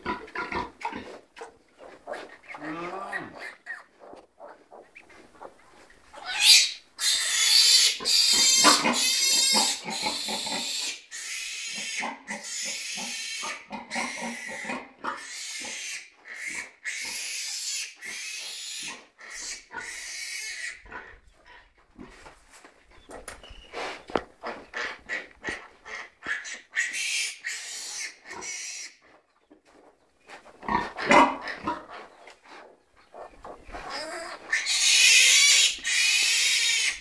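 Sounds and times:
animal squealing: 6.2 - 10.5, 33.8 - 37.0.

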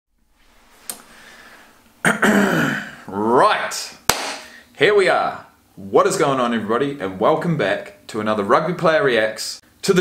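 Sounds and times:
man clearing throat: 2.0 - 3.1.

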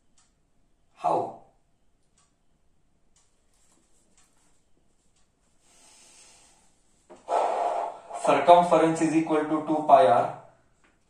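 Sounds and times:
soft ticks: 0.0 - 0.4, 2.0 - 2.4, 3.1 - 5.6.

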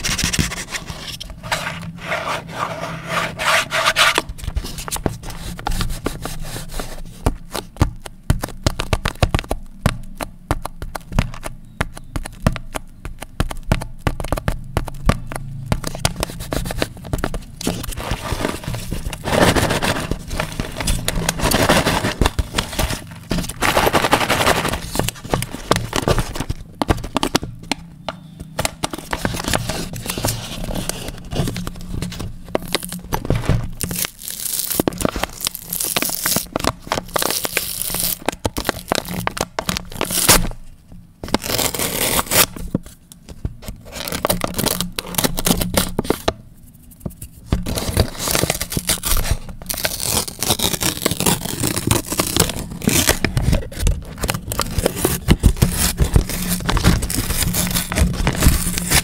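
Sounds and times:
plastic film tearing: 15.8 - 27.4, 28.9 - 40.6, 41.3 - 42.6, 43.9 - 46.3, 47.6 - 59.0
plastic shrink-wrap crinkling: 15.8 - 27.6, 28.6 - 42.8, 43.8 - 46.3, 47.6 - 59.0.

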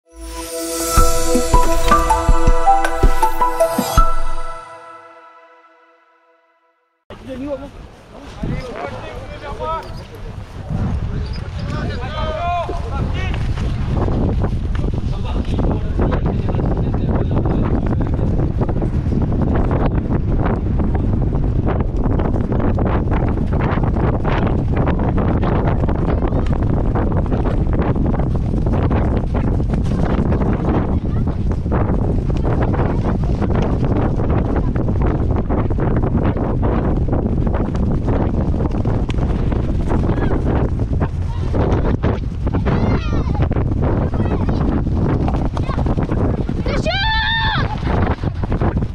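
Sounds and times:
wind buffeting microphone: 7.2 - 48.9.

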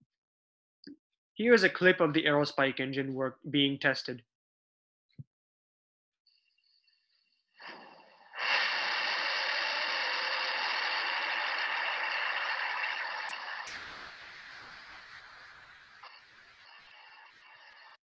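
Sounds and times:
rocket engine roar: 9.1 - 18.0.

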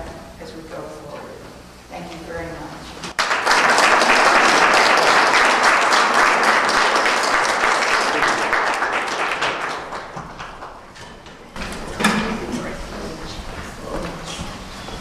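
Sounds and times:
audience applauding: 3.2 - 11.0.

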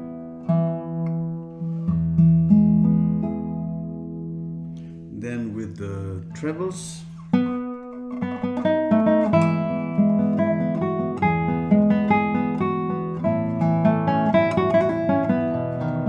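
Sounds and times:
classical guitar fingerstyle: 0.0 - 16.0.

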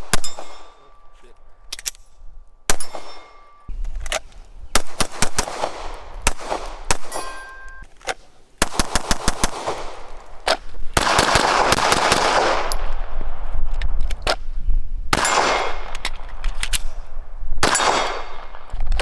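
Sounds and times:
pistol shots: 0.0 - 1.1, 2.7 - 3.7, 4.7 - 7.8, 8.6 - 13.0, 15.1 - 16.9, 17.6 - 18.7
metallic ringing tones: 0.2 - 1.4, 2.8 - 3.7, 7.1 - 7.8.

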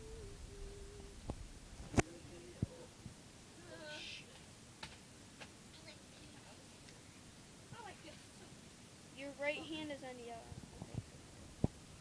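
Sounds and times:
faint drawn-out vocal sounds: 0.0 - 1.3, 1.9 - 4.4.

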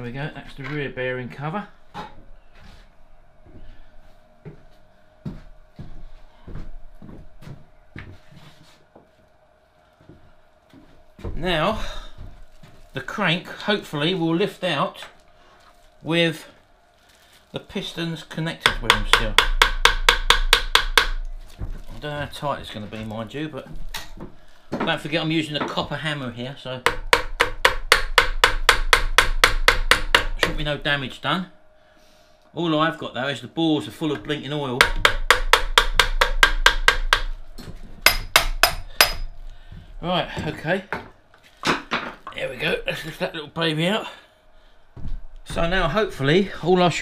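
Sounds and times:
faint steady hum: 0.0 - 47.0
footsteps on wooden floor: 4.4 - 9.2, 10.0 - 12.9, 45.0 - 45.7
hammer tapping on metal: 18.6 - 21.2, 26.9 - 30.6, 34.8 - 37.3, 38.0 - 39.3.

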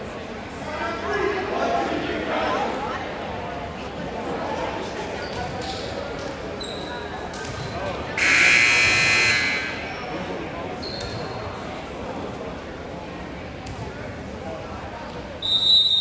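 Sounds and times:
shoe squeaks: 6.6 - 7.8, 10.8 - 11.4
gym buzzer: 8.2 - 9.9.

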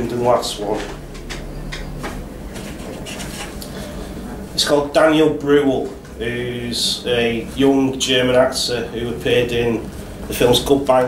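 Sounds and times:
low room hum: 0.0 - 11.0
book pages turning: 2.0 - 3.8.

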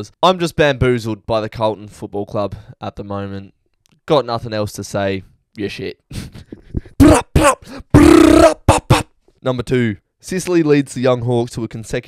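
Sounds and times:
man shouting into microphone: 7.0 - 9.1.

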